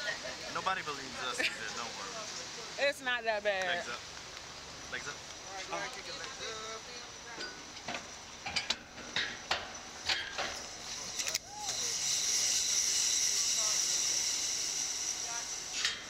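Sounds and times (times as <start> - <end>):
steady high hiss: 0.0 - 16.0.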